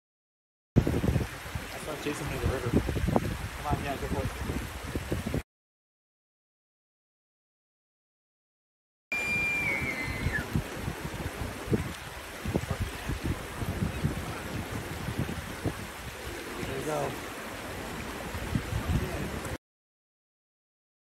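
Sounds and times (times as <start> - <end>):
elk bugling: 9.1 - 10.5.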